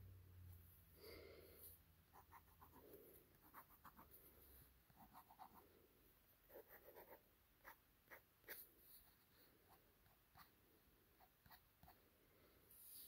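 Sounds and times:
pen scratching on paper: 2.1 - 2.8, 3.4 - 4.2, 4.9 - 5.6, 6.5 - 10.5.

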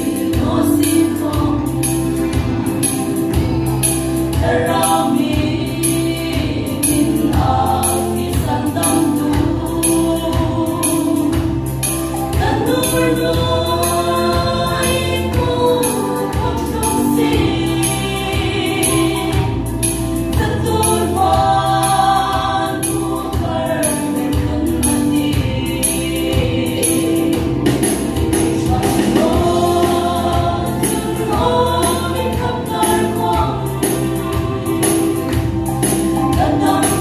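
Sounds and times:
female vocal group singing: 0.0 - 37.0
instrumental backing with bass: 0.0 - 37.0.

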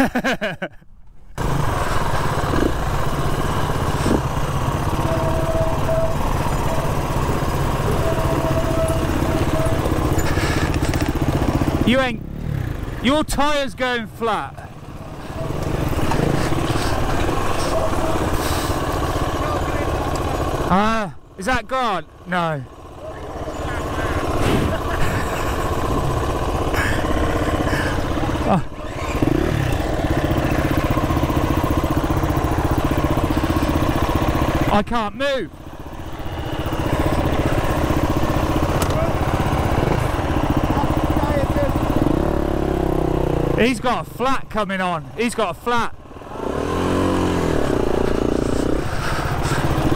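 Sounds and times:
dirt bike engine running: 1.3 - 49.9.

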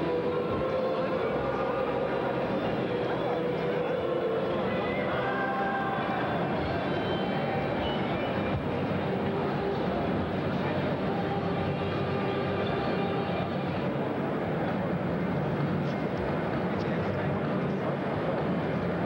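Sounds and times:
hubbub of many voices: 0.0 - 19.0.

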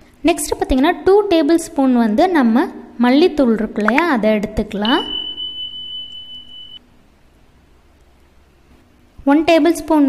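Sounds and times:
high-pitched electronic beep: 4.8 - 6.8.

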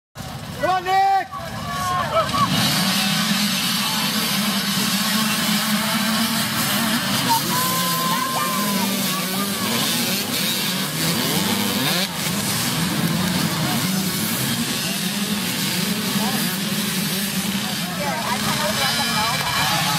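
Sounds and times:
dirt bike engines racing: 0.2 - 19.9
spectator voices: 0.9 - 19.9.

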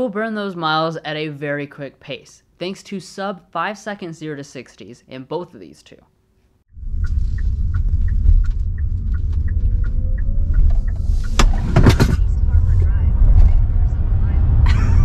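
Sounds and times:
road and tyre rumble: 6.7 - 15.0
light ticking: 6.9 - 11.6.

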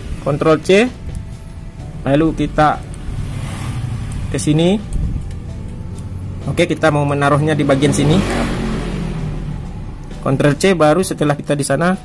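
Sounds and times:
vehicle passing by: 1.6 - 11.0.

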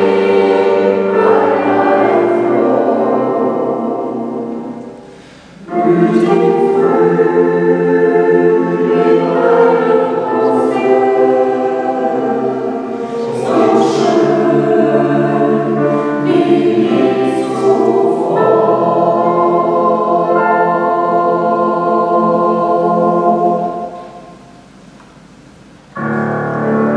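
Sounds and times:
mixed choir singing: 0.0 - 24.4.

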